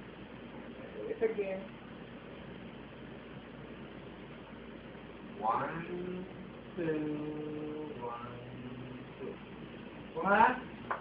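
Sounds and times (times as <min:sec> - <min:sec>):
room hum and hiss: 0:00.0 - 0:11.0.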